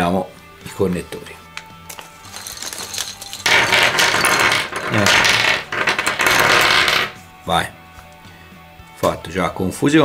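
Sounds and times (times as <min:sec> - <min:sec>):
metal connectors clinking on desk: 0:01.9 - 0:07.1.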